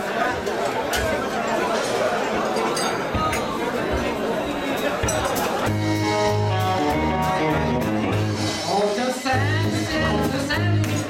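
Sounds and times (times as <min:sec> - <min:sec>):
electric bass line: 0:05.7 - 0:08.8, 0:09.4 - 0:11.0
electric guitar: 0:05.7 - 0:11.0.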